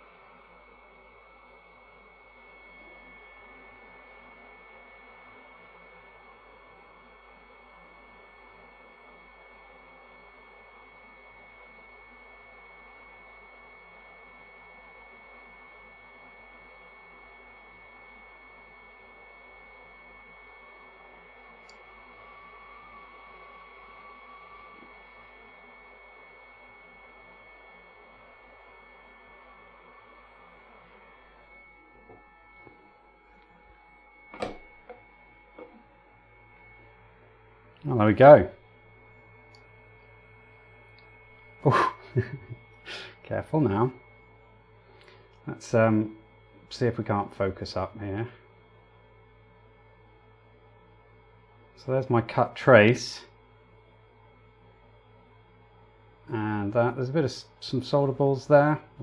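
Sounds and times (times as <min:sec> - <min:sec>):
high fan whine: 0:00.0 - 0:59.0
hot air gun hissing: 0:42.8 - 0:43.2.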